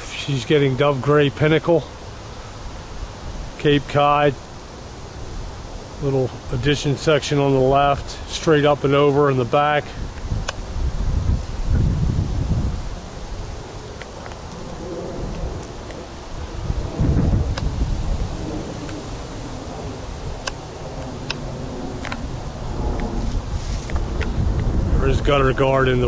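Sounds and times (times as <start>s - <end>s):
wind buffeting microphone: 2.7s - 26.0s.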